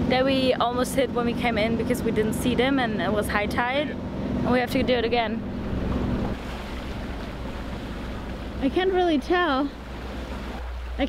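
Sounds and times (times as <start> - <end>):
higher hum: 0.0 - 11.0
low engine drone: 0.0 - 11.0
water rushing past hulls: 0.0 - 11.0
wind on microphone: 1.1 - 11.0.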